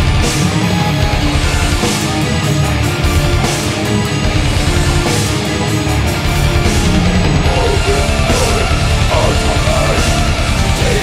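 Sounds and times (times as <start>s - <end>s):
distorted guitars: 0.0s - 11.0s
rapid drumming: 0.0s - 11.0s.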